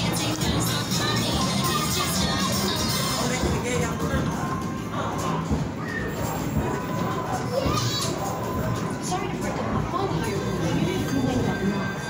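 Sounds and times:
children chattering and shouting: 0.0 - 3.6, 4.5 - 11.0
music playing: 0.0 - 12.0.

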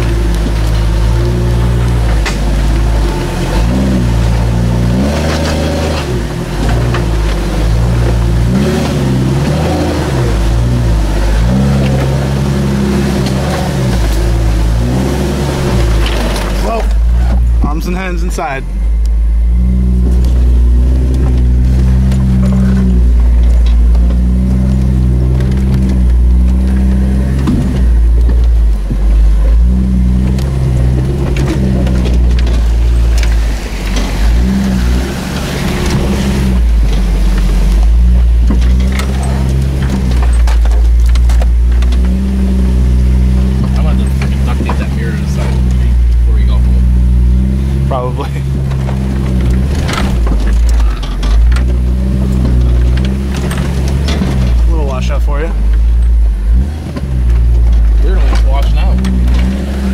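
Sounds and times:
car engine running: 0.0 - 59.9
body knocks and rattles: 20.0 - 46.3, 48.5 - 59.9.

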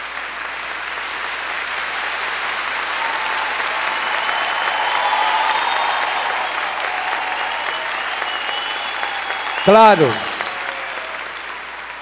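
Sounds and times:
audience applause: 0.0 - 12.0.

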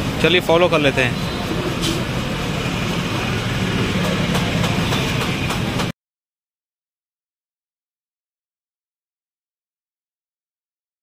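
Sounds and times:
low engine hum: 0.0 - 5.9.

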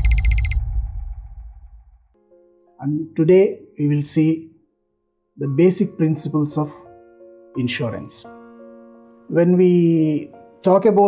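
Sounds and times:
high electronic ticks: 0.0 - 1.2
deep rumble: 0.0 - 2.1.

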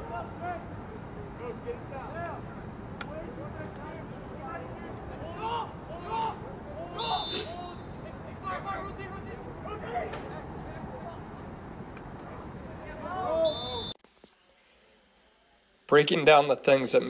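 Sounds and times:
players shouting: 1.4 - 10.6
shrill whistle blast: 7.0 - 7.6, 13.4 - 14.0.

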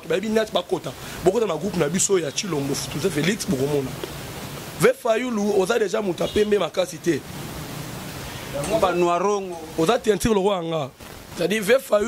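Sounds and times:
man speaking: 0.0 - 4.0, 4.8 - 7.3, 8.5 - 12.0
background hiss: 0.0 - 12.0.

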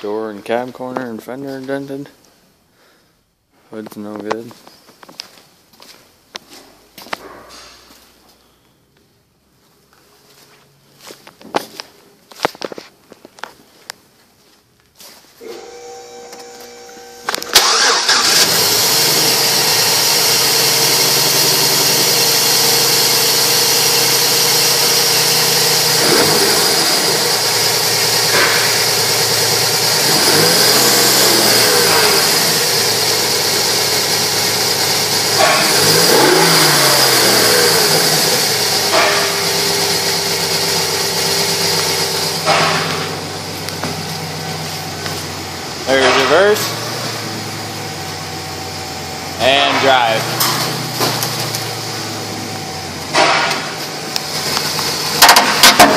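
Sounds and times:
truck engine starting and running: 15.4 - 55.9
engine revving: 16.8 - 55.9.

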